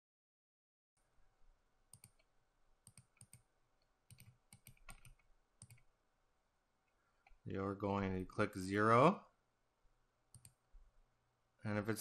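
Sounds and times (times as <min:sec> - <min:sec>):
computer mouse clicks: 0:01.9 - 0:03.5, 0:04.1 - 0:05.9, 0:10.3 - 0:10.6.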